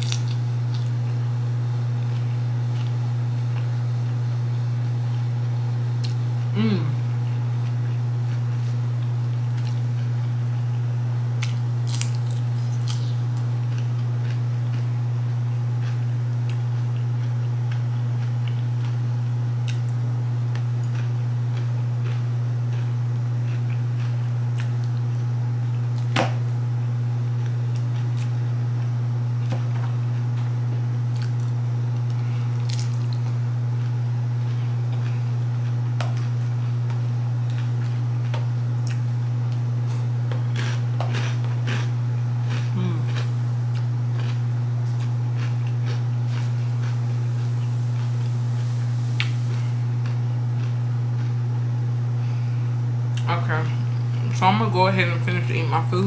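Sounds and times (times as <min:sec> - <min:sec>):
person eating crunchy salad: 0:00.0 - 0:01.2, 0:06.0 - 0:10.8, 0:11.4 - 0:26.2, 0:27.3 - 0:52.5
low hum: 0:00.0 - 0:56.0.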